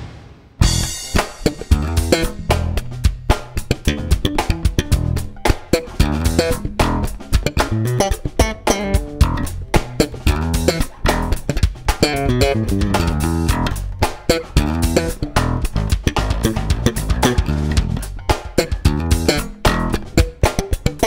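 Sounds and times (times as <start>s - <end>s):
funky instrumental music: 0.6s - 21.0s.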